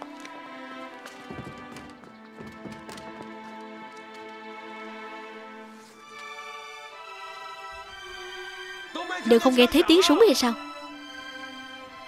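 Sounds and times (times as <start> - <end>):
dramatic string score: 0.0 - 12.0
thuds of scuffling footsteps: 0.9 - 4.4.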